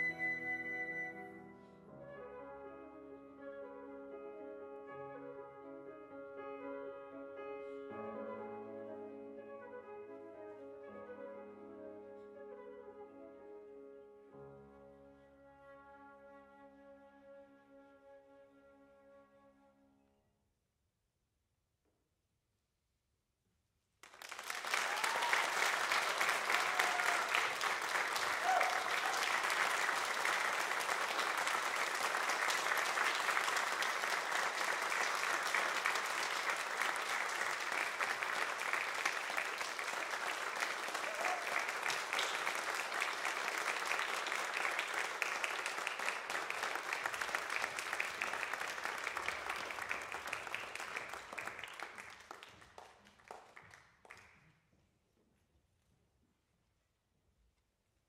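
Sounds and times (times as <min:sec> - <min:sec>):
audience applauding: 0:24.0 - 0:54.4.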